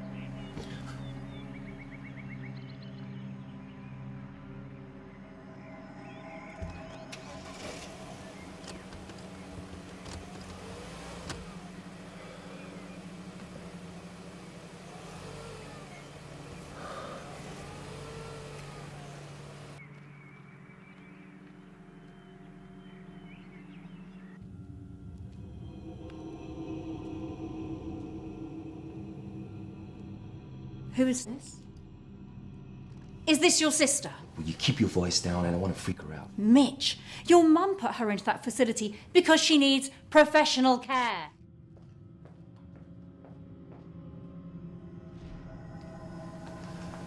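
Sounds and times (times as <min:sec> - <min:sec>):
car engine and road noise: 0:00.0 - 0:39.4, 0:41.4 - 0:47.0
low droning music: 0:00.0 - 0:47.0.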